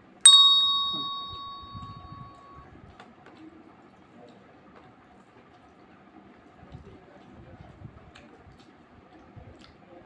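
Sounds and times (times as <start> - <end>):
bright bell-like ding: 0.3 - 2.6.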